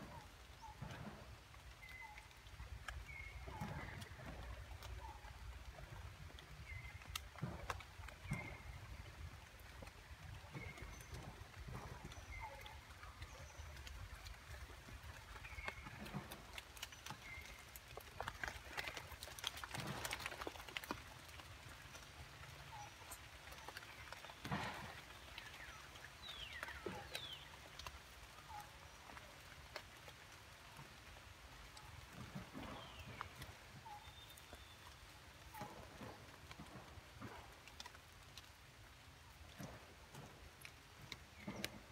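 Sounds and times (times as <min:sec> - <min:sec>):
rustling of leaves and twigs: 0:00.0 - 0:41.9.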